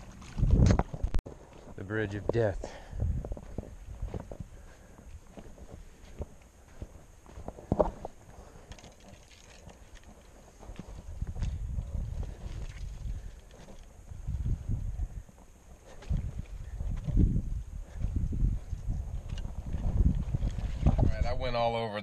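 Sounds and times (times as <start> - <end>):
footsteps on sandy ground: 0.0 - 21.4.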